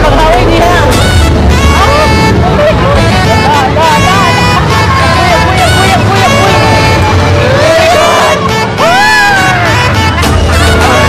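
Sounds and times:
riders yelling and shrieking: 0:07.3 - 0:11.0.

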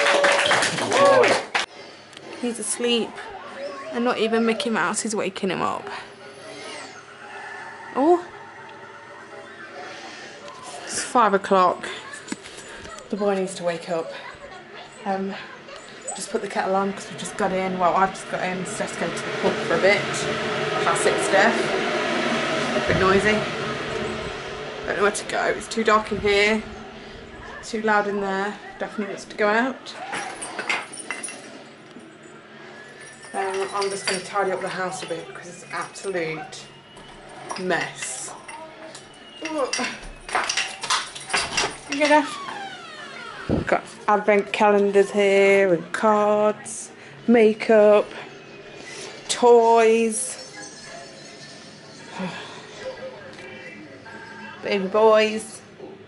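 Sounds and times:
television playing faintly: 0:01.7 - 0:20.3, 0:24.9 - 0:30.4, 0:43.3 - 0:56.0.

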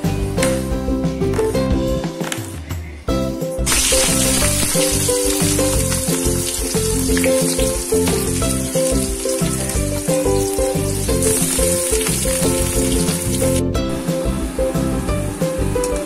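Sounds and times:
background music: 0:00.0 - 0:16.0
onions sizzling in hot oil: 0:03.7 - 0:13.6.

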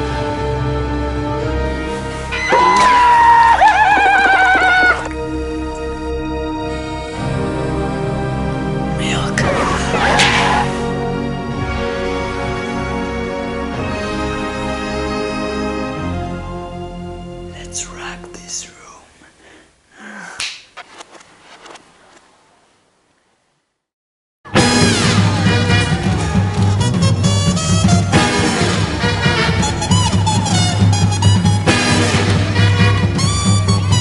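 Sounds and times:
background music: 0:00.0 - 0:19.0, 0:24.5 - 0:34.0
horse whinnying: 0:02.4 - 0:05.1.

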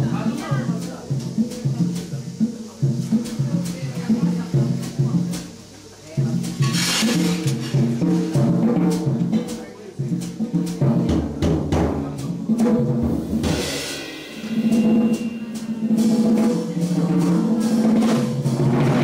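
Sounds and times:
cymbal crashes: 0:00.0 - 0:10.9, 0:11.7 - 0:19.0
jazz quartet playing: 0:00.0 - 0:19.0.

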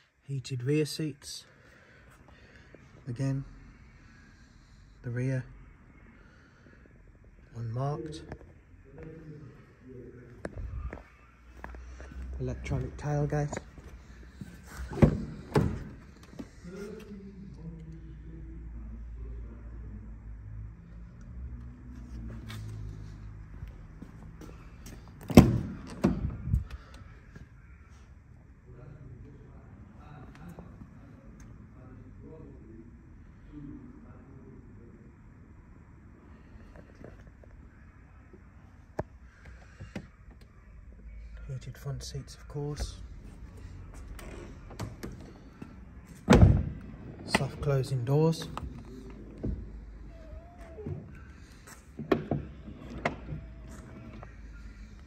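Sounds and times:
low rumble of carried camera: 0:08.2 - 0:19.3.

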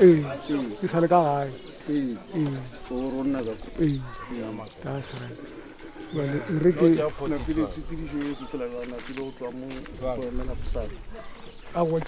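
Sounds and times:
birds chirping: 0:00.0 - 0:12.0
men talking: 0:00.0 - 0:12.0.

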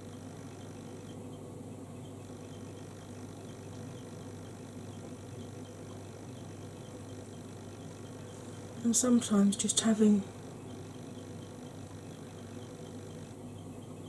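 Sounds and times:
electrical hum: 0:00.0 - 0:14.0.

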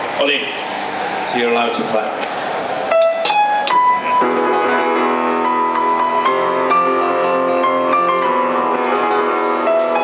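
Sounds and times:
grand piano playing: 0:02.8 - 0:10.0.

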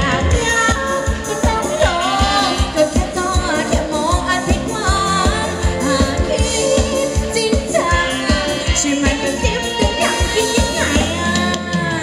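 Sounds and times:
live band dance song: 0:00.0 - 0:12.0
person singing: 0:00.0 - 0:12.0.

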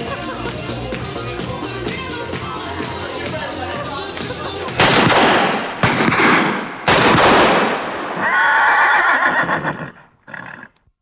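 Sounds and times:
horse neighing: 0:08.2 - 0:10.8.

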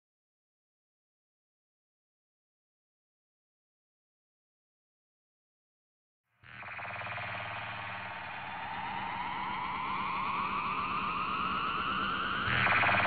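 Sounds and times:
rising riser tone: 0:06.6 - 0:13.0.

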